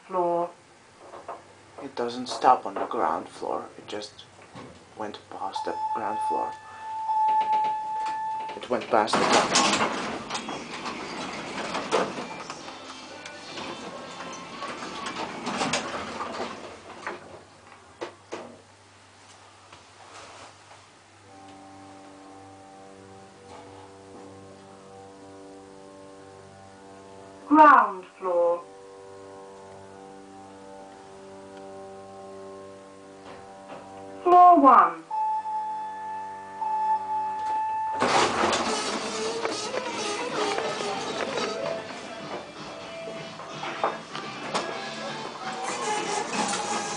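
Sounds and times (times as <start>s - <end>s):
lift doors sliding open: 5.6s - 17.5s, 35.1s - 46.9s
shop background music: 10.5s - 15.6s, 33.4s - 46.9s
hydraulic pump motor humming: 37.8s - 42.5s, 44.6s - 46.9s.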